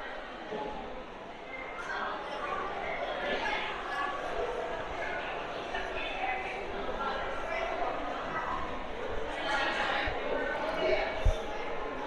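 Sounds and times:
voices murmuring in hall: 0:00.0 - 0:12.0.

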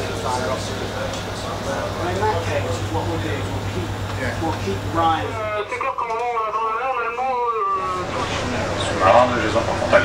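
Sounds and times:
voice over radio loudspeaker: 0:04.8 - 0:08.4.

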